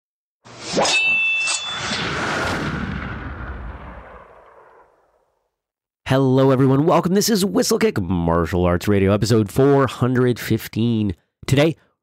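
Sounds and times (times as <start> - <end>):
sound effect swell: 0.5 - 5.0
sharp metallic hits ringing: 0.6 - 2.3.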